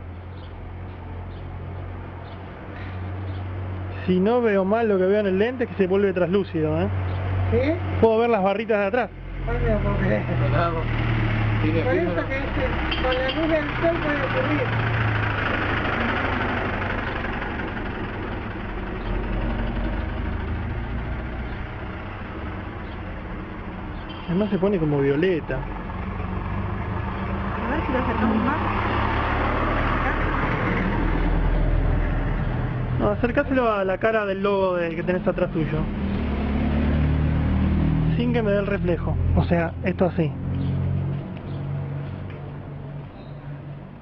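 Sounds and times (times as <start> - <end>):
low engine rumble: 0.0 - 44.0.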